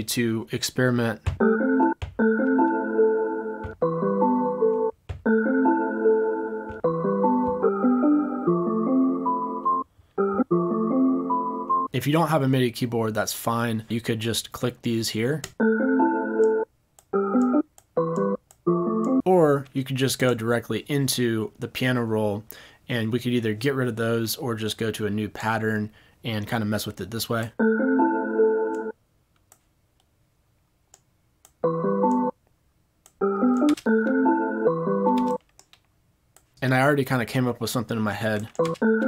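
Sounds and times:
short keyboard chords: 0:00.9 - 0:11.9, 0:31.6 - 0:32.3, 0:33.2 - 0:35.4, 0:38.5 - 0:39.0.

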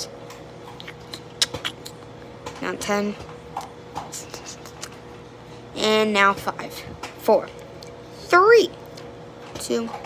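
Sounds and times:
microwave oven humming: 0:00.0 - 0:10.0.

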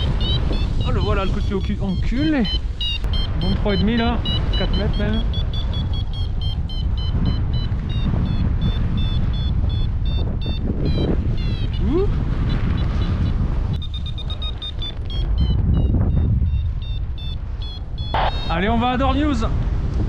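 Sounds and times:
variometer beeping rapidly: 0:00.0 - 0:19.4
wind rushing on microphone: 0:00.0 - 0:20.0.

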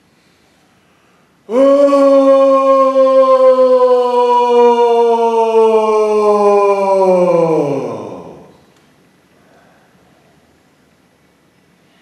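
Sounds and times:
person chanting long aah: 0:01.5 - 0:08.7.

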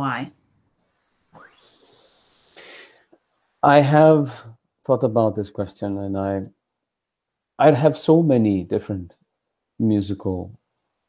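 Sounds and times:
person breathing in: 0:01.4 - 0:03.1
person breathing out: 0:01.4 - 0:03.1
person speaking: 0:03.6 - 0:06.6, 0:07.6 - 0:09.1.

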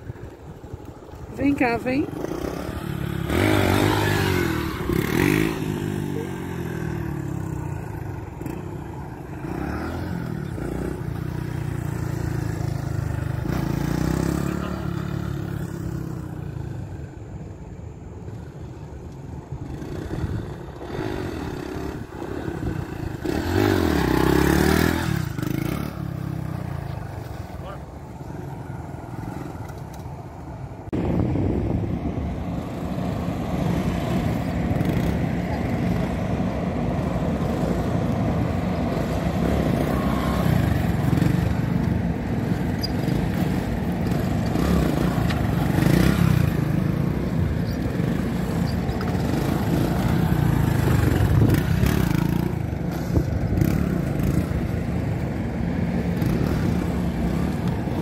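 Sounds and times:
steady loud engine: 0:01.3 - 0:15.6, 0:30.9 - 0:58.0
small motorcycle revving past: 0:01.4 - 0:17.2, 0:19.6 - 0:30.0, 0:31.0 - 0:58.0.

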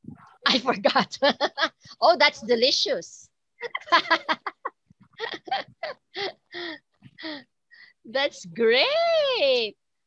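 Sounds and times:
person laughing over video call: 0:03.6 - 0:07.4.

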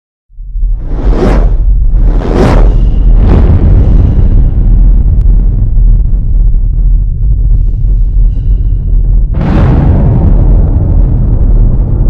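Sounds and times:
deep steady rumble: 0:00.3 - 0:12.0
whoosh sound effect: 0:00.7 - 0:03.4.

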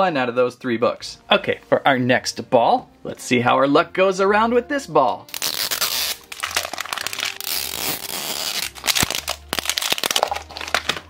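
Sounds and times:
plastic wrapper tearing and crinkling: 0:05.3 - 0:11.0.

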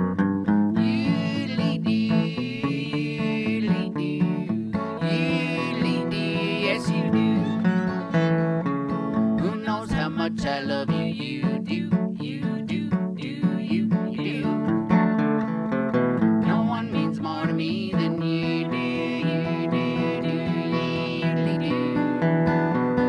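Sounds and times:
acoustic guitar strumming: 0:00.0 - 0:23.0
fiddle melody: 0:00.0 - 0:23.0.

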